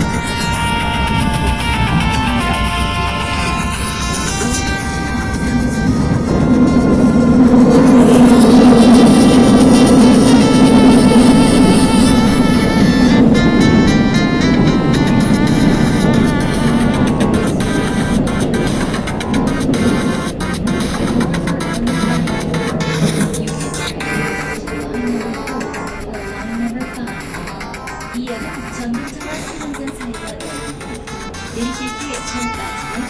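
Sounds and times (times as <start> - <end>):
train rumble inside carriage: 0.0 - 33.0.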